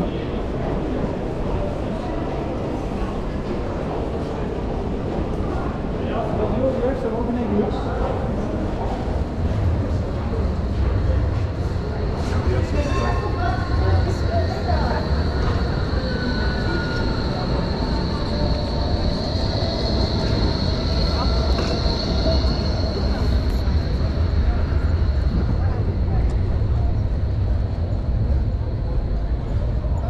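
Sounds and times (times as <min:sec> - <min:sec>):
low rumble of city noise: 0:00.0 - 0:30.0
tram rolling on rails: 0:00.0 - 0:30.0
high whine: 0:09.8 - 0:30.0.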